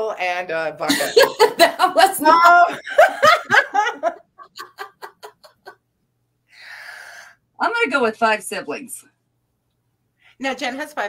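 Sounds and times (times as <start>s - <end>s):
woman laughing in staccato bursts: 0.9s - 5.8s.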